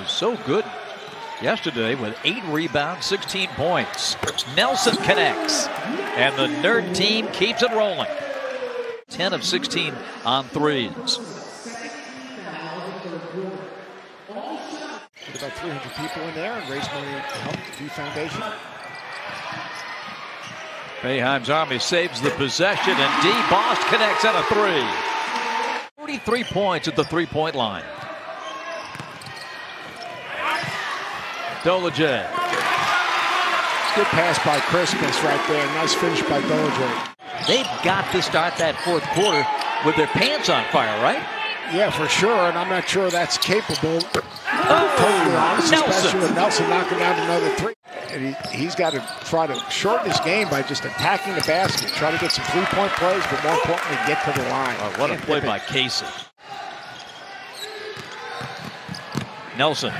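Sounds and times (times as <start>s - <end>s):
arena crowd hubbub: 0.0s - 59.9s
voices rising: 33.8s - 53.8s.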